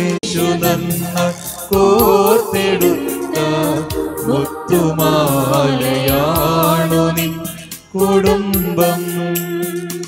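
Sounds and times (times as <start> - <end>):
church choir singing a hymn: 0.4 - 9.0.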